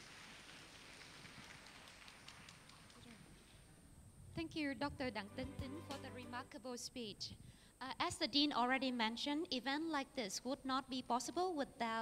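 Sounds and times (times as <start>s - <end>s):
faint audience applause: 0.0s - 3.5s.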